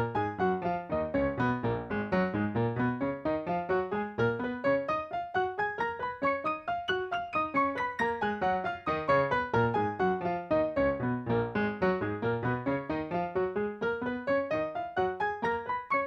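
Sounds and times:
piano playing scale in octaves: 0.0 - 16.0.

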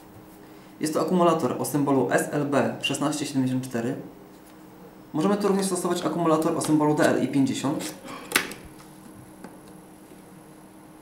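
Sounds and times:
battery door snapping shut: 8.3 - 8.7.

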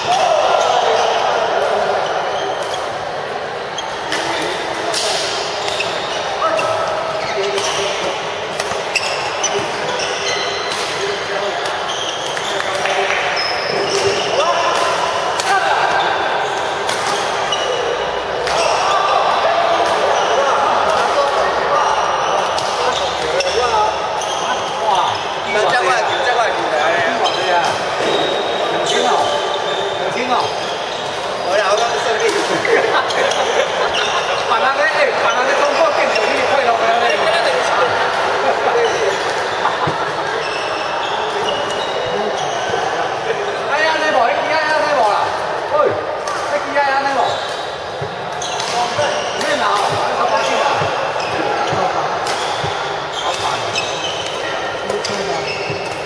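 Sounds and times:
sneakers squeaking on court floor: 0.0 - 56.0
rackets striking shuttlecocks: 44.8 - 56.0.

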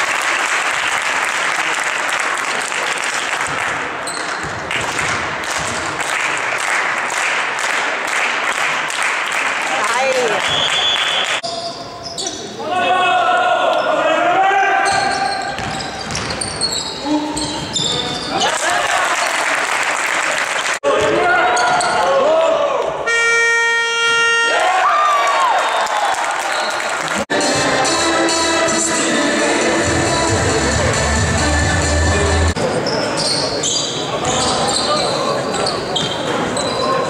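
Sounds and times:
basketball bouncing: 3.4 - 6.0, 15.5 - 16.7
sneakers squeaking: 4.0 - 5.9, 10.4 - 12.6, 14.8 - 18.5, 21.6 - 22.0, 32.6 - 37.0
scoreboard buzzer: 23.1 - 24.6.

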